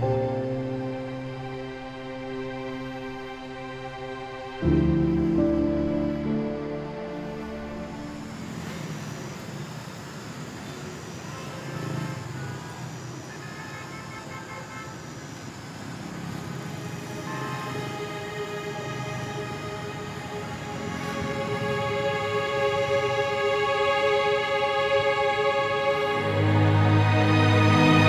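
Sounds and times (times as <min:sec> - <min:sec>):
soft background music: 0:00.0 - 0:09.5, 0:16.0 - 0:28.0
passing vehicles: 0:00.0 - 0:28.0.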